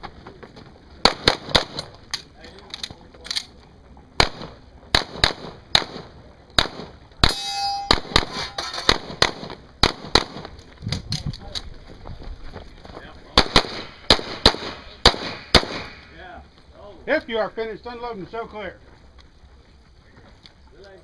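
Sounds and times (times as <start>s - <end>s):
pistol shots: 1.0s - 1.9s, 4.2s - 10.5s, 13.4s - 16.1s
metallic clang: 7.2s - 9.0s.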